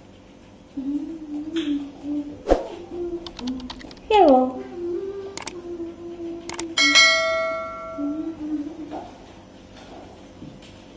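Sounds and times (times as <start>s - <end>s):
mouse clicks: 5.4s - 5.6s
bell ding: 6.8s - 8.3s.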